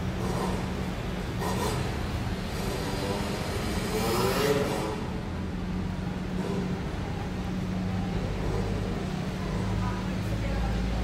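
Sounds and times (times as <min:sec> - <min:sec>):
traffic engines humming: 0:00.0 - 0:11.0
passers-by voices: 0:04.5 - 0:11.0.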